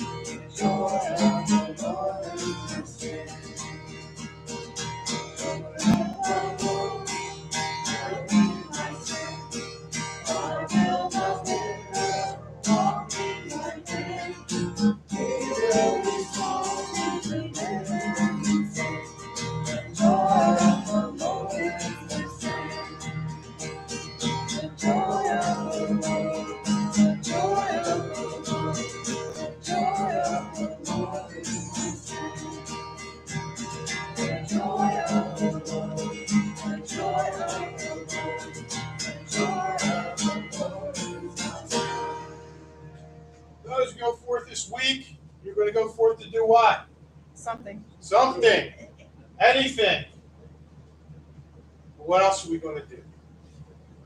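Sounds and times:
people singing: 0:00.0 - 0:03.9, 0:05.1 - 0:42.8
strummed acoustic guitar: 0:00.0 - 0:46.7.

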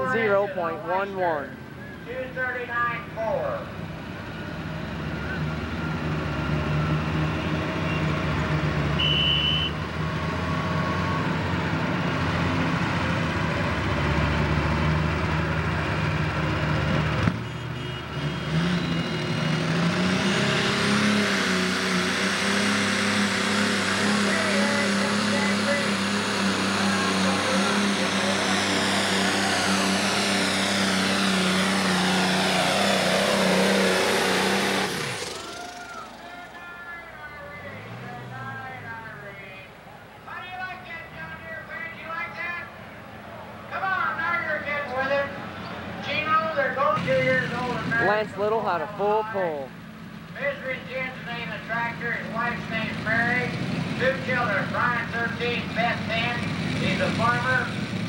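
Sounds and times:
diesel tractor engine running: 0:00.0 - 0:40.3, 0:42.2 - 0:58.0
turbo whine: 0:22.8 - 0:36.4.

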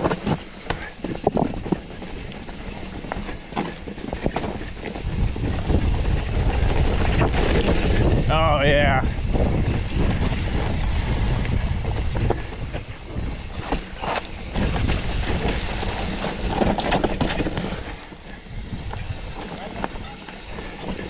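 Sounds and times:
bike rattling over rocks: 0:00.0 - 0:21.0
bike tyre rumble: 0:00.0 - 0:21.0
wind rushing over microphone: 0:00.0 - 0:21.0.

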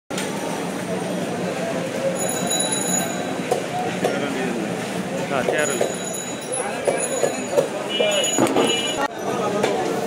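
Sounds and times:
distant voices: 0:00.2 - 0:10.0
high ringing tone: 0:02.1 - 0:03.5, 0:05.6 - 0:09.1.

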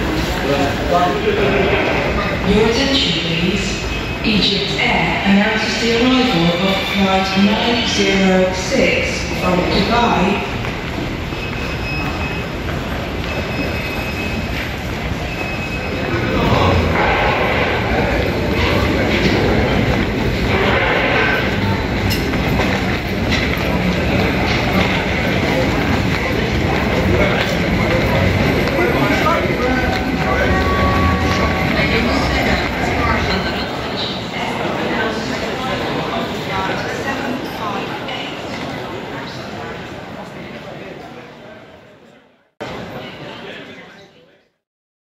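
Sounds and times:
people talking: 0:00.0 - 0:11.0, 0:14.5 - 0:44.6
suitcases rolling on tiled floor: 0:10.4 - 0:40.5.

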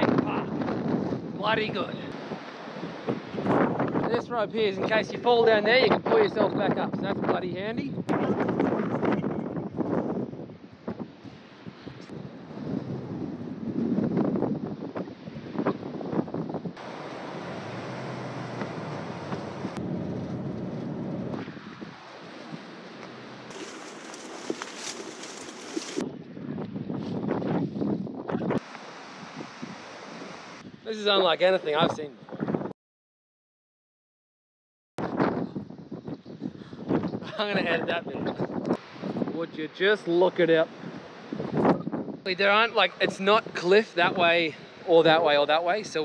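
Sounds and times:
wind gusting on microphone: 0:00.0 - 0:32.7, 0:35.0 - 0:46.0
road noise inside moving car: 0:16.8 - 0:21.3.

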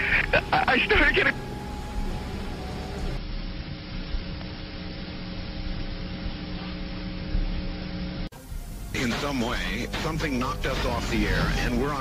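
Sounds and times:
low hum: 0:00.0 - 0:12.0
static hiss: 0:00.0 - 0:12.0.

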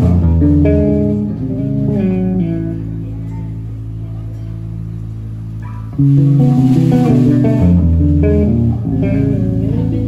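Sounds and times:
electric guitar and bass chord: 0:00.0 - 0:10.0
short high guitar notes: 0:00.0 - 0:10.0.

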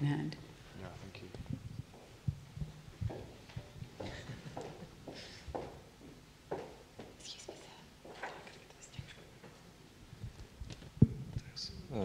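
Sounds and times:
faint room noise: 0:00.0 - 0:12.0
dull low thumps: 0:01.2 - 0:04.4.

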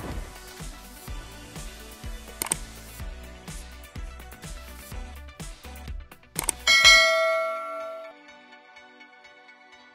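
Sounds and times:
quick clicks: 0:02.4 - 0:02.7, 0:06.4 - 0:06.6
notification bell ding: 0:06.7 - 0:08.1.

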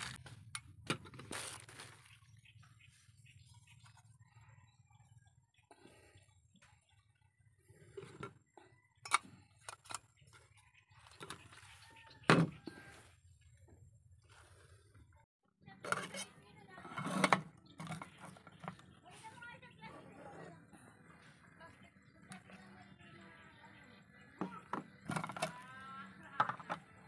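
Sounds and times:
plastic rustling: 0:01.0 - 0:02.3
cookware clatter: 0:15.8 - 0:18.8.

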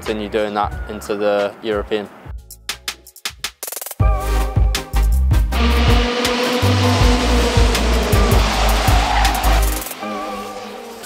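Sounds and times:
music with heavy bass beat: 0:02.4 - 0:10.0
racing kart engines at high revs: 0:05.6 - 0:11.0.

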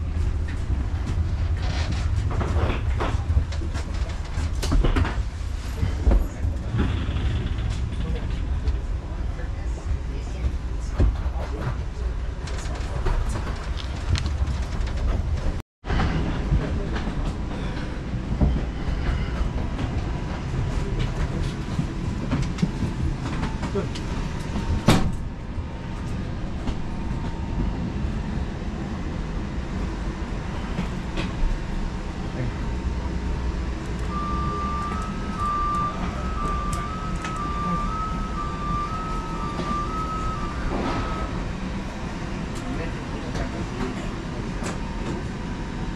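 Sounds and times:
steady low rumble: 0:00.0 - 0:45.9
two-pitch electronic beeping: 0:34.1 - 0:41.4.

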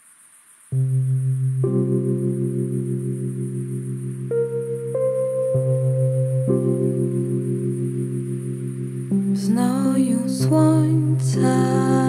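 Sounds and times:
sustained synthesizer chord: 0:00.8 - 0:12.0.

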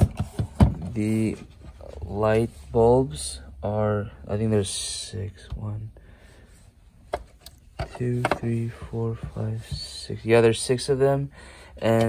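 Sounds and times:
hand tapping plastic housing: 0:07.1 - 0:08.6.

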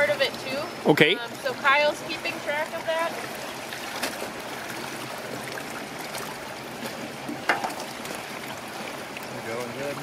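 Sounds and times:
splashing running water: 0:01.3 - 0:10.0.

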